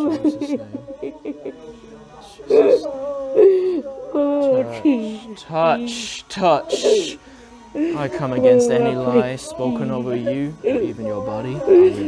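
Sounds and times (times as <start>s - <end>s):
person crying out: 2.5s - 5.3s, 6.4s - 7.2s.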